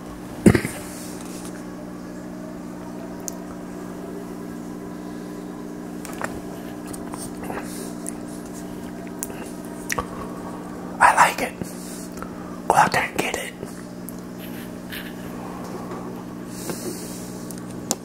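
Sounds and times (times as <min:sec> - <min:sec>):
low mechanical hum: 0:00.0 - 0:18.0
man sipping and swallowing: 0:06.1 - 0:10.4.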